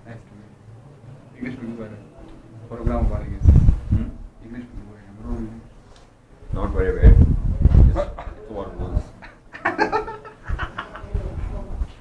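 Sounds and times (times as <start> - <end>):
men talking: 0.0 - 11.9.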